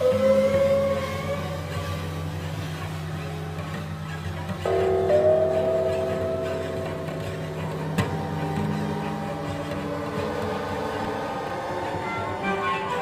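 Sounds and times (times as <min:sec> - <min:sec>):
electroacoustic drone music: 0:00.0 - 0:13.0
low hum: 0:00.0 - 0:13.0.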